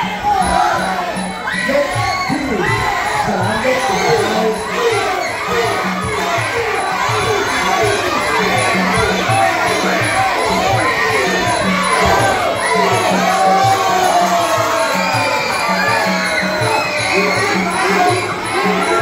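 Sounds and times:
crowd shouting and cheering: 0:00.0 - 0:19.0
music with drum beat: 0:04.1 - 0:19.0.

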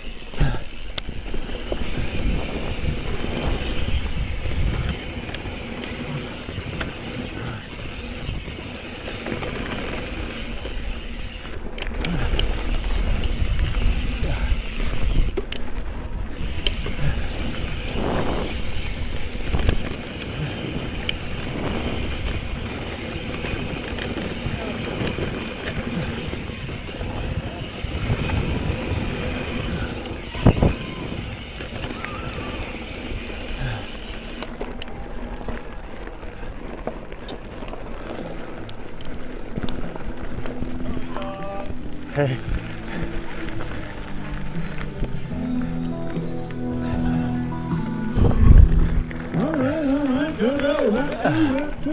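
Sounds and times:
bike tyres on dirt: 0:00.0 - 0:51.9
wind on microphone: 0:01.1 - 0:08.8, 0:12.1 - 0:33.8, 0:48.0 - 0:49.7.

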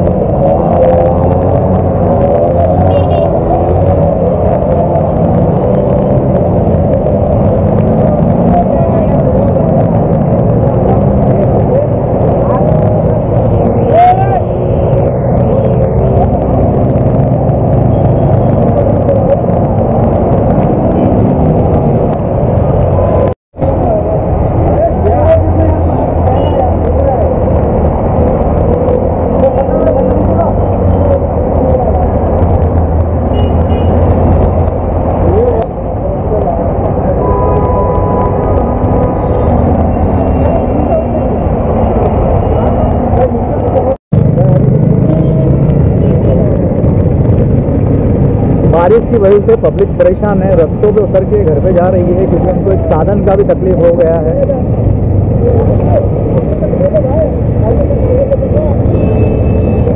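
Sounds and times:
people's voices: 0:00.0 - 0:59.9
vehicle engines running: 0:00.0 - 0:59.9
vehicles pushing through floodwater: 0:00.0 - 0:59.9.

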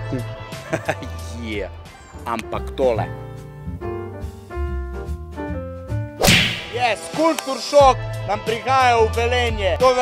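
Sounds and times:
soft keyboard music: 0:00.0 - 0:06.2
loud swoosh effect: 0:06.2 - 0:07.0.

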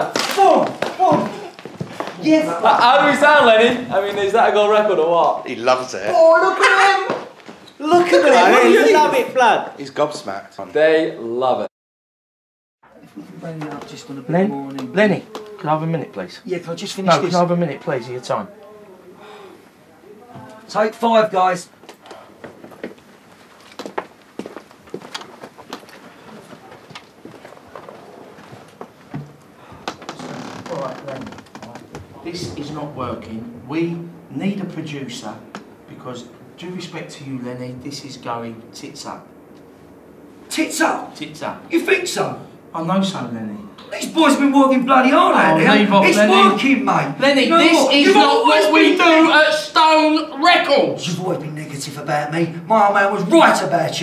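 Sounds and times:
men calling out: 0:00.0 - 0:04.8, 0:05.8 - 0:09.8, 0:13.1 - 0:20.7, 0:43.8 - 0:51.0
footsteps walking across floor: 0:00.6 - 0:02.3, 0:21.8 - 0:30.2.

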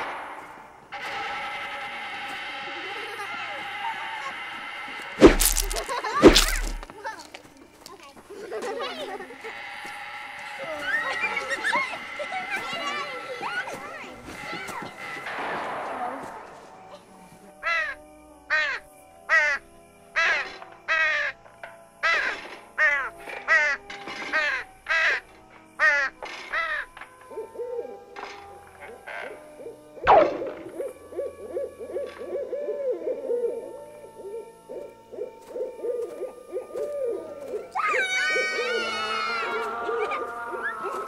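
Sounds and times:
owl calling: 0:28.8 - 0:41.0.

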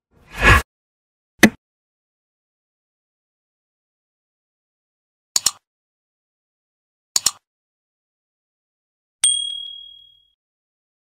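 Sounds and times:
notification bell ding: 0:09.2 - 0:10.4.

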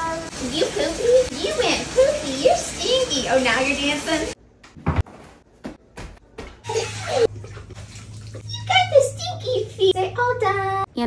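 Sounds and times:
water pouring into bath: 0:00.0 - 0:04.4, 0:06.7 - 0:08.9.

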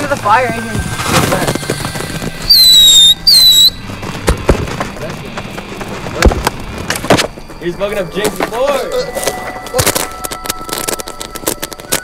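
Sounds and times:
firework whistles: 0:02.4 - 0:03.8.

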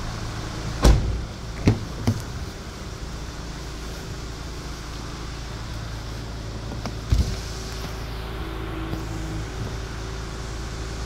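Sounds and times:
steady low hum: 0:00.0 - 0:11.0
car door unlatching knocks: 0:00.8 - 0:02.4.

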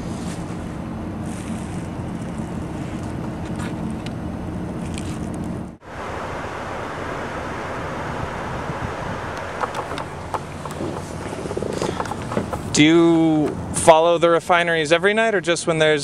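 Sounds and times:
wind rush on microphone: 0:04.8 - 0:13.8
vehicle engine idling: 0:06.7 - 0:14.0.

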